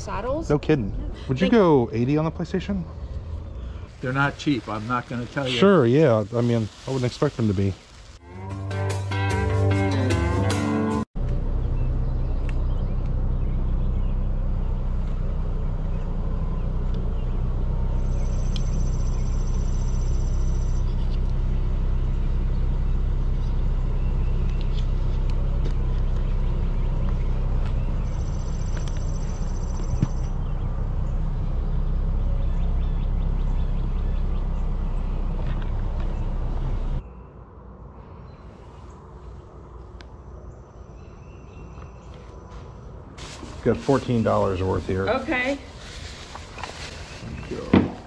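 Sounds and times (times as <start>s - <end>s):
low rumble: 0.0s - 8.2s, 11.2s - 41.7s.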